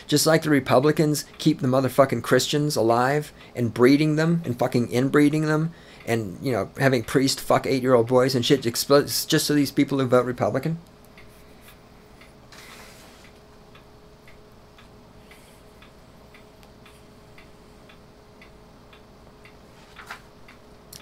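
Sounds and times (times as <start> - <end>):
faint clock ticking: 0.0 - 21.0
low electrical hum: 0.0 - 21.0.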